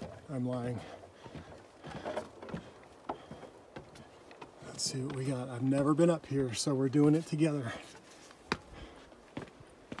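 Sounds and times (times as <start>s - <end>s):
knocks and scuffs on wooden ladder: 0.0s - 6.2s, 7.0s - 10.0s.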